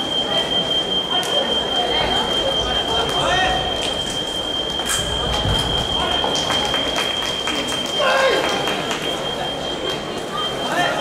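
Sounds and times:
steady high-pitched tone: 0.0s - 11.0s.

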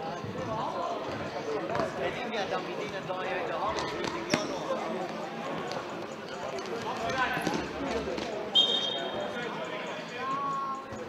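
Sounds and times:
spectators talking: 0.0s - 11.0s
referee's whistle: 8.5s - 9.3s.

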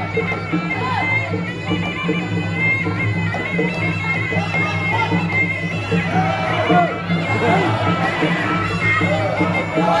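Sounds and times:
oboe melody: 0.0s - 10.0s.

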